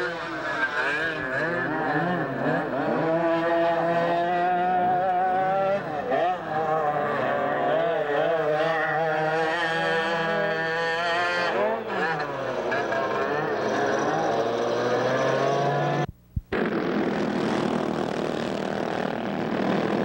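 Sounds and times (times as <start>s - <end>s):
go-kart engines revving: 0.0s - 20.0s.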